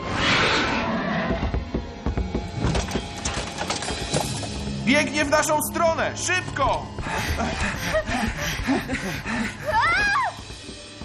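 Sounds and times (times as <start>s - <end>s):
tense background music: 0.0s - 11.0s.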